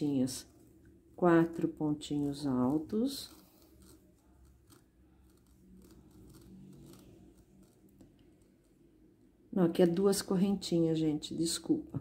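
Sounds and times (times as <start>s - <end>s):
crochet hook ticks and rustles: 1.4s - 8.8s.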